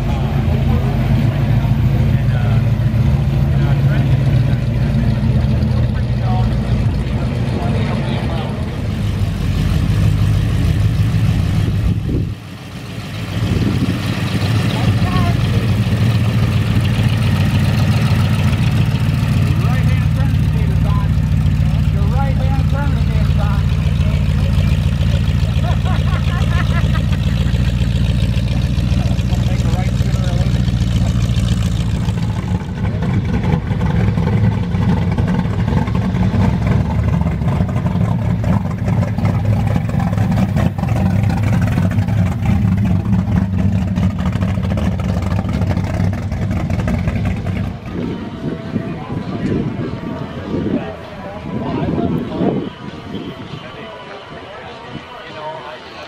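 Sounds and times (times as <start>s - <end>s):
people talking: 0.0s - 8.9s, 14.6s - 15.8s, 19.5s - 27.1s, 28.8s - 31.3s, 47.6s - 56.0s
car engines driving slowly past: 0.0s - 56.0s.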